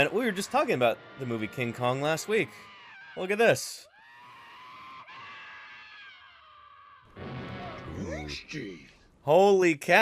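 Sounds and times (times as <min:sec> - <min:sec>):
high-pitched scream: 0:02.0 - 0:08.5.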